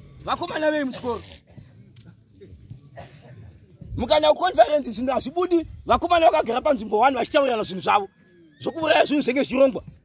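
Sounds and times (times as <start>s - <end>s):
faint distant voices: 0.0s - 10.0s
man speaking loudly: 0.2s - 1.2s, 4.0s - 9.9s.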